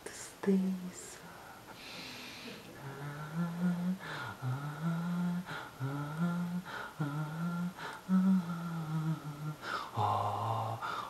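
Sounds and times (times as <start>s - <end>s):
quick breaths: 1.6s - 2.6s
man humming: 2.6s - 11.0s.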